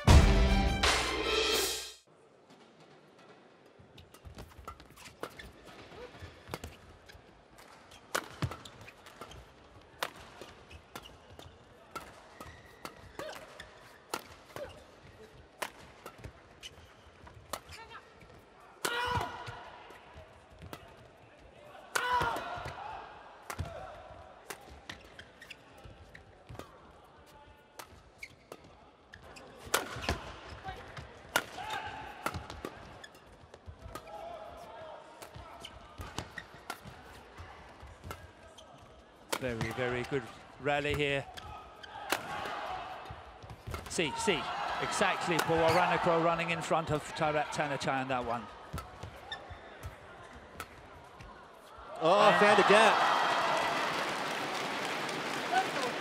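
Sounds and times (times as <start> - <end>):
rackets striking shuttlecock: 7.6 - 14.8, 31.3 - 32.9, 43.6 - 44.0, 48.7 - 49.2
arena crowd hum: 34.1 - 56.0.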